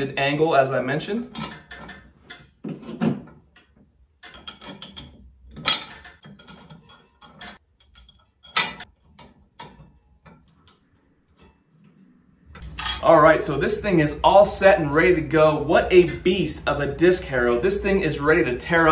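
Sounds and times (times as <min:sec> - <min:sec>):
metal hardware clanking: 0:01.3 - 0:03.4, 0:04.2 - 0:11.9, 0:12.5 - 0:18.9.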